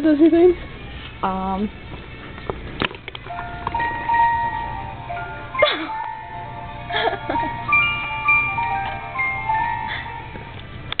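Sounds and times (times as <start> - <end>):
toy electronic tune: 3.3 - 10.6.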